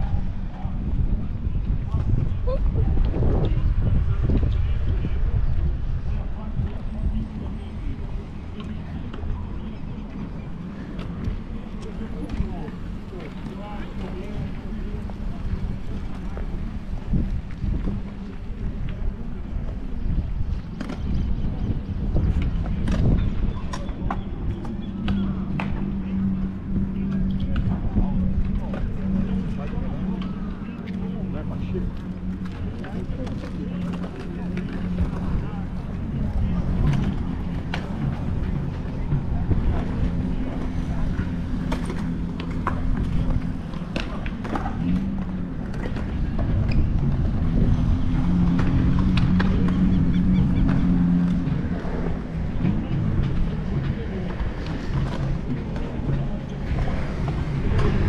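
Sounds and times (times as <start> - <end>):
people's voices: 0.0 - 58.0.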